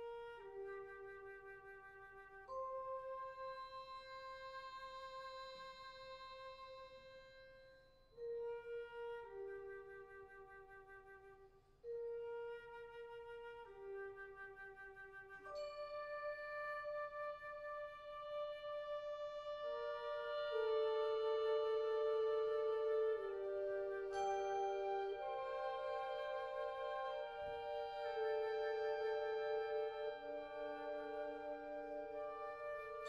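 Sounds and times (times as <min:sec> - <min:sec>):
wind ensemble playing softly: 0:00.0 - 0:06.7, 0:08.2 - 0:33.0
flutes: 0:00.0 - 0:33.0.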